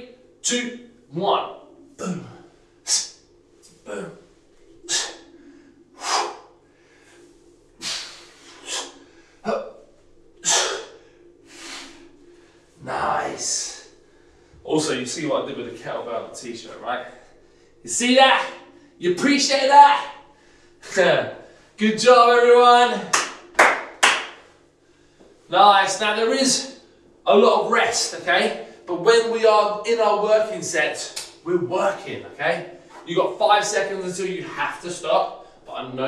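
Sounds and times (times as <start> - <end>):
man exhaling forcefully: 7.8 - 9.3
person clapping hands: 23.1 - 24.5.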